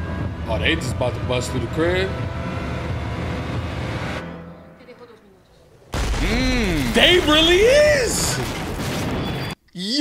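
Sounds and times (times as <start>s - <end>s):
vehicle engine rumbling: 0.0s - 4.2s.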